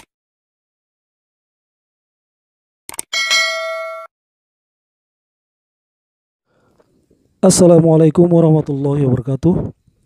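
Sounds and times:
quick clicks: 0:02.9 - 0:03.1
notification bell ringing: 0:03.1 - 0:04.1.

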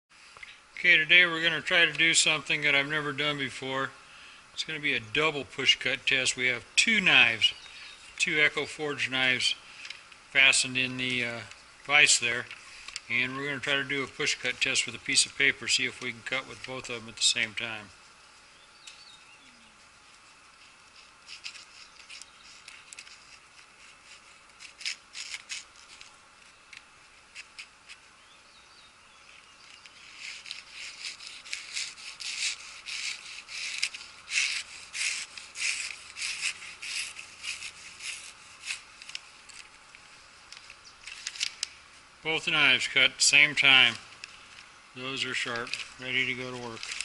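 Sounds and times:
newspaper crackling and rustling: 0:09.7 - 0:28.2, 0:29.3 - 0:47.0
blades slicing paper: 0:20.2 - 0:26.2, 0:29.8 - 0:39.8, 0:45.2 - 0:47.0.

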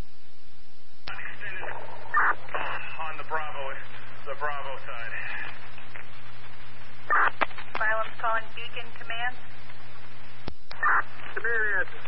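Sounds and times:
low constant hum: 0:00.0 - 0:12.0
scanner static hiss: 0:00.0 - 0:12.0.

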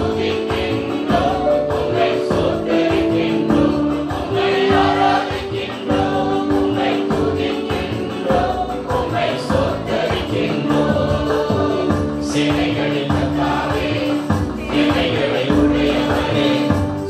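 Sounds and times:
mixed choir singing gospel: 0:00.0 - 0:17.0.

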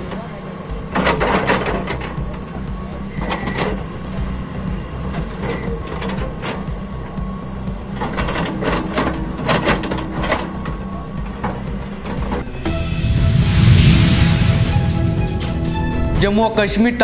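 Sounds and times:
excavator diesel engine running: 0:00.0 - 0:17.0.

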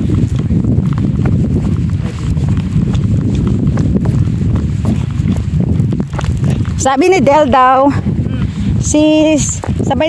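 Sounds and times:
footsteps on tarmac: 0:00.0 - 0:10.0
wind buffeting microphone: 0:00.0 - 0:10.0.

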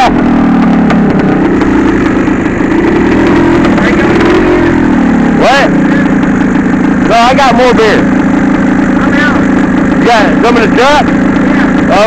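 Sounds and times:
two-stroke dirt bike engine: 0:00.0 - 0:12.0.

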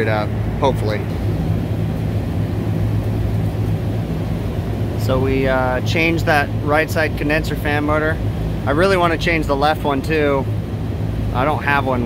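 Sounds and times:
low machinery hum: 0:00.0 - 0:12.0.

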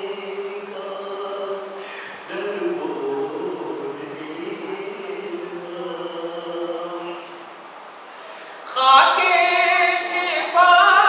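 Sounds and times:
elderly man chanting: 0:00.0 - 0:07.4.

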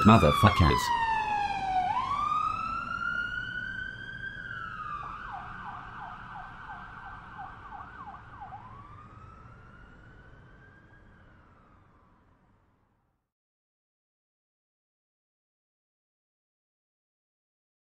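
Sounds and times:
police siren wailing and yelping: 0:00.0 - 0:12.0.

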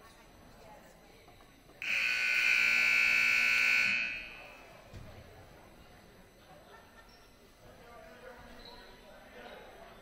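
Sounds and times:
scoreboard buzzer blast: 0:01.8 - 0:04.5.

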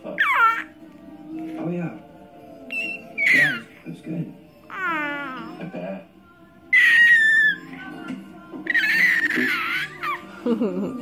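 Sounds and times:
baby squealing: 0:00.2 - 0:00.8, 0:02.7 - 0:03.8, 0:04.7 - 0:05.6, 0:06.7 - 0:07.8, 0:08.7 - 0:10.3.

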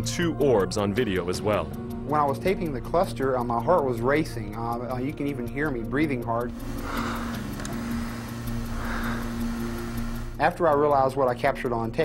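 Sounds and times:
steady low hum: 0:06.5 - 0:10.4
man breathing hard: 0:06.6 - 0:09.9.

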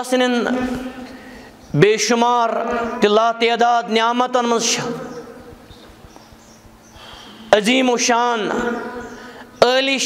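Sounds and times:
man preaching: 0:00.0 - 0:01.0, 0:01.7 - 0:05.5, 0:07.3 - 0:10.0.

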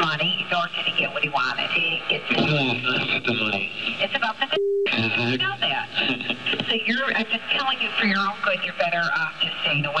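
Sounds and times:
woman talking on telephone: 0:00.0 - 0:02.3, 0:04.0 - 0:05.9, 0:06.6 - 0:10.0
man talking on telephone: 0:02.4 - 0:04.0, 0:04.8 - 0:06.4.

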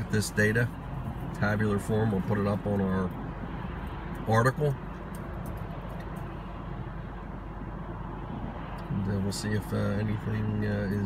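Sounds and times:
road and tyre noise in car: 0:00.0 - 0:11.0.

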